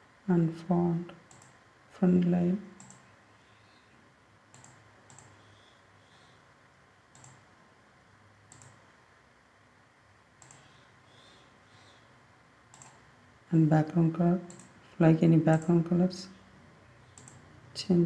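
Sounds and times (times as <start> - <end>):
faint computer mouse clicks: 1.3 - 1.6, 2.8 - 3.1, 4.5 - 5.4, 7.1 - 7.4, 8.5 - 8.8, 10.4 - 10.8, 12.7 - 13.0, 14.5 - 14.7, 17.1 - 17.4.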